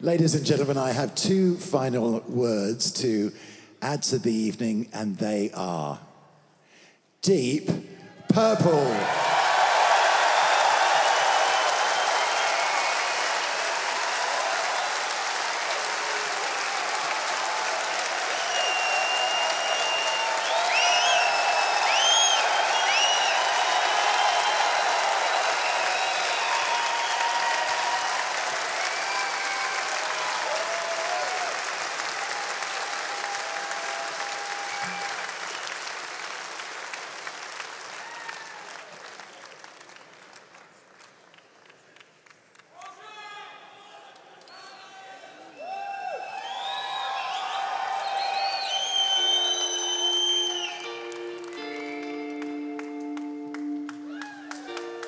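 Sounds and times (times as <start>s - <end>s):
audience applauding and cheering: 8.1s - 55.0s.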